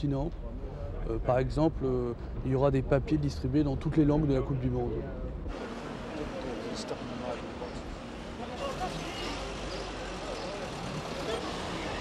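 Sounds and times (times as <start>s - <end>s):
road traffic rumble: 0.0s - 12.0s.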